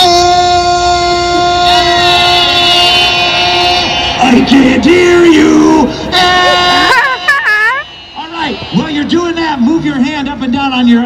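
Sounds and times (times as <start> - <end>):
person holding a vocal note: 0.0 - 8.8.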